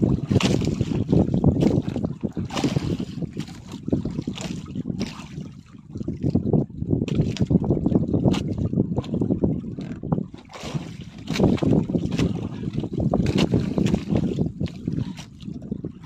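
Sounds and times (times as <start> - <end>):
water washing against boat: 0.0 - 16.0
wind rumbling on microphone: 0.0 - 16.0.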